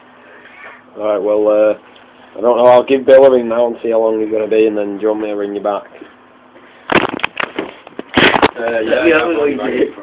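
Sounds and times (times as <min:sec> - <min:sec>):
camera handling crackles and knocks: 0:06.9 - 0:08.6.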